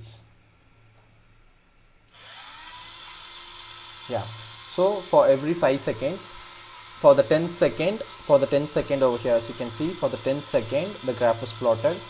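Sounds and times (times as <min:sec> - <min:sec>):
electric motor whining: 0:02.1 - 0:12.0.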